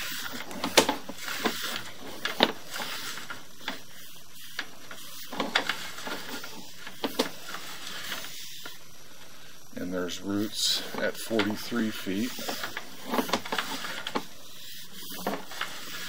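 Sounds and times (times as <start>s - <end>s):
steady hiss: 0.0s - 16.0s
push cable clicking and rubbing: 11.0s - 16.0s.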